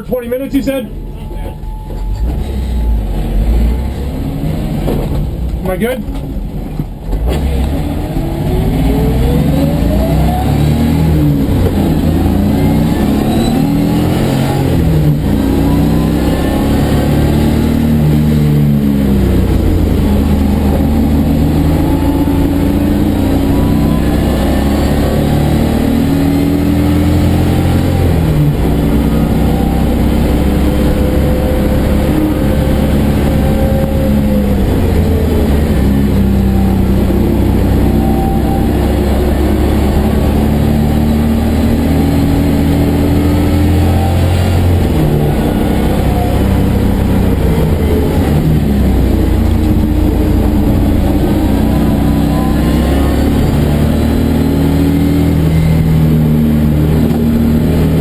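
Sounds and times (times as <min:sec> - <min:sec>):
car engine accelerating: 0:00.0 - 0:58.0.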